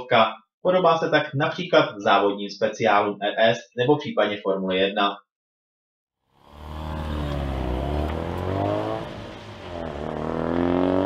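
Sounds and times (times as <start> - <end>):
car engine accelerating: 6.4 - 11.0.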